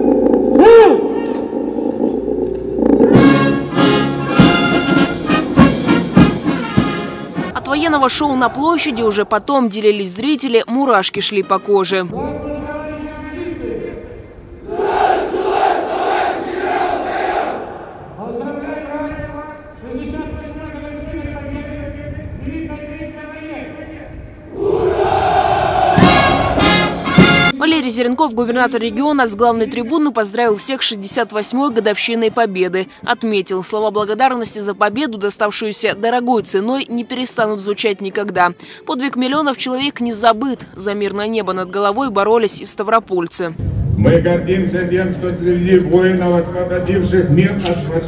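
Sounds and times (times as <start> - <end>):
brass band playing march: 3.2 - 7.6, 25.2 - 27.6
soldiers shouting together: 14.6 - 18.0, 24.5 - 26.6
steady drum beat: 26.0 - 27.5.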